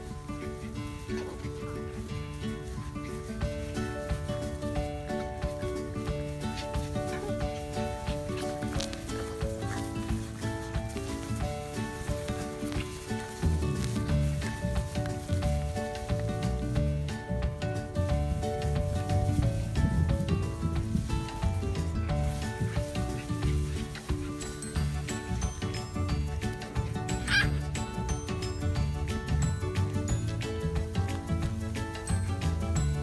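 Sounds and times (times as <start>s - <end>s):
low pulsing beat: 3.4s - 33.0s.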